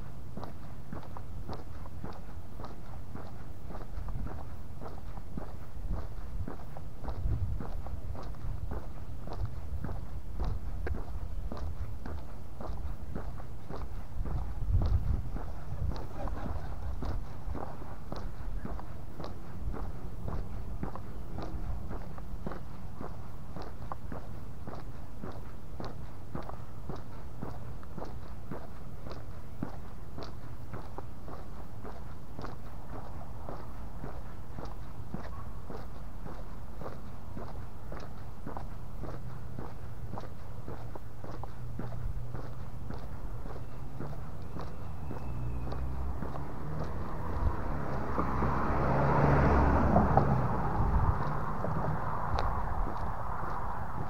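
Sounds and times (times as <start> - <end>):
low steady rumble: 0.0 - 35.1
car approaching: 0.0 - 54.0
footsteps on paved street: 0.0 - 54.0.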